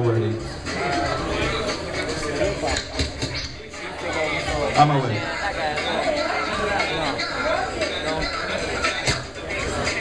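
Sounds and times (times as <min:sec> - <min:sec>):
music: 0:00.0 - 0:10.0
people talking in a crowd: 0:00.0 - 0:10.0.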